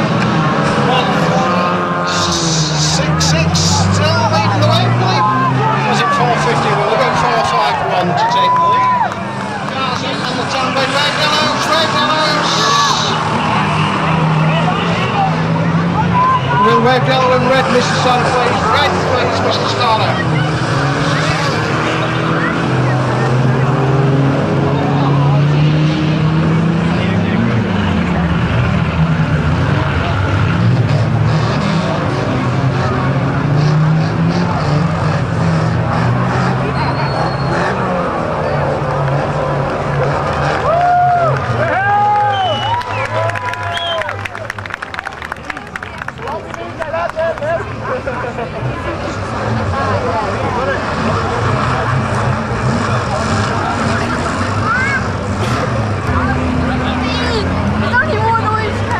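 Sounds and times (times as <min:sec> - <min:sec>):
crowd chatter: 0:00.0 - 0:58.9
race car engines revving: 0:00.0 - 0:58.9.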